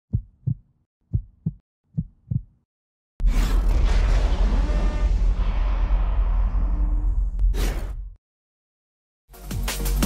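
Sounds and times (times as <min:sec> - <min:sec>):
heartbeat thumps: 0:00.1 - 0:02.6.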